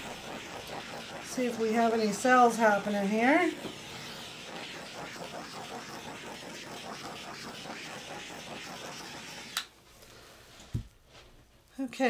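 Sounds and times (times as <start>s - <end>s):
gas torch hissing: 0.0s - 9.7s.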